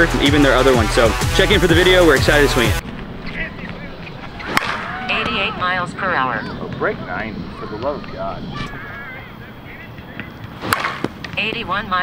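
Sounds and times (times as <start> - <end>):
bat hitting softball crack: 3.7 - 5.6, 10.2 - 11.6.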